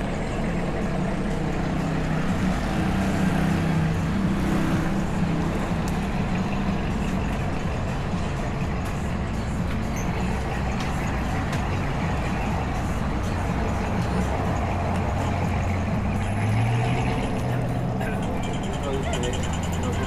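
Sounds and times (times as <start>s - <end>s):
low engine hum: 0.0s - 20.0s
vehicle engines running: 0.0s - 20.0s.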